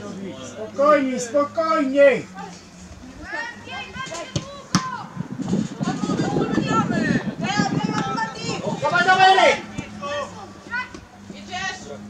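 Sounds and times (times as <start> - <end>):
young footballers shouting: 3.2 - 11.8.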